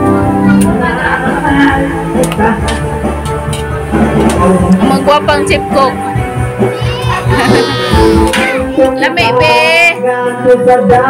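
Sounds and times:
light regular beat: 0.7s - 9.9s.

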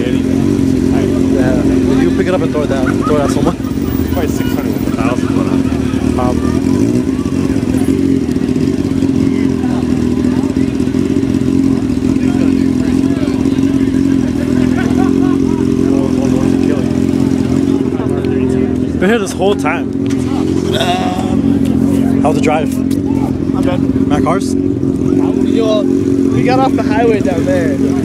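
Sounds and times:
engine running steadily: 0.0s - 28.0s
faint crowd voices: 0.0s - 28.0s.

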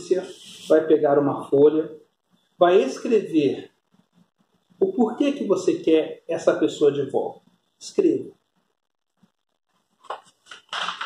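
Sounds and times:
paper rustling and crackling: 10.0s - 11.0s.

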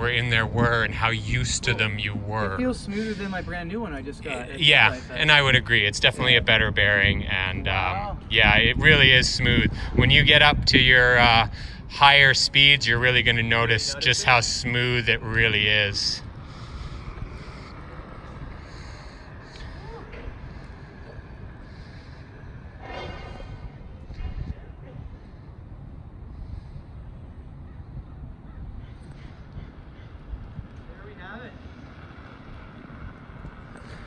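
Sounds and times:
wind rumble on microphone: 0.0s - 2.6s, 5.3s - 34.0s
distant calls: 11.6s - 34.0s.

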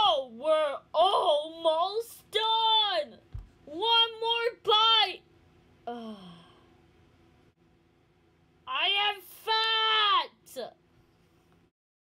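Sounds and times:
person sighing oh: 5.9s - 6.7s.

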